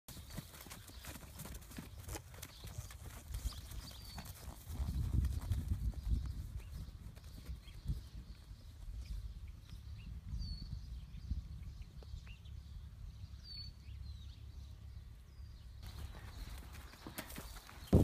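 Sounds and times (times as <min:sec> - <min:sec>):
horse hoofbeats on turf: 0:00.1 - 0:08.4.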